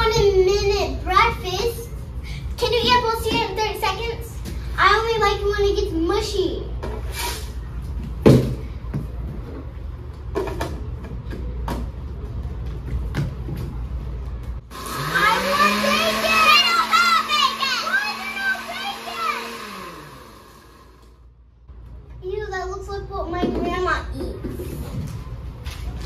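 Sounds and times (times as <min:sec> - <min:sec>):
blender motor whine: 0:14.7 - 0:21.2.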